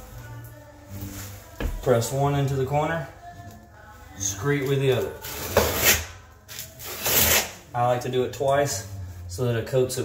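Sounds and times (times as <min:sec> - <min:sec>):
trowel scraping: 0:05.2 - 0:06.1.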